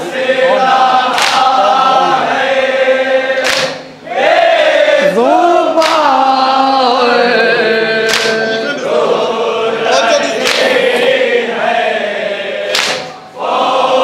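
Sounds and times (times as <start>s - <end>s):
men chanting in unison: 0.0s - 14.0s
sharp chest-beating slaps: 1.1s - 1.5s, 3.4s - 3.9s, 5.8s - 6.1s, 8.1s - 8.4s, 10.4s - 10.8s, 12.7s - 13.2s.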